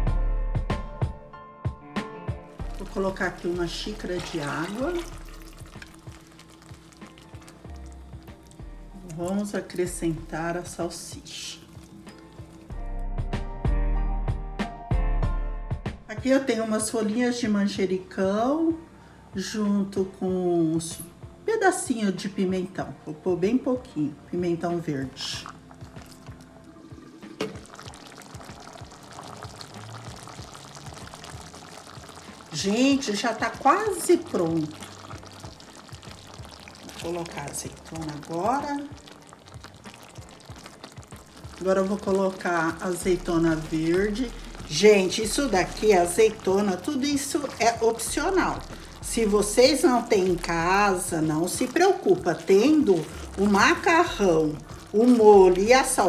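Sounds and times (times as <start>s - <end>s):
faint background music: 0.0s - 56.0s
sauce simmering with pops: 2.6s - 12.8s, 25.2s - 56.0s
water pouring into sauce: 2.6s - 12.8s, 25.1s - 56.0s.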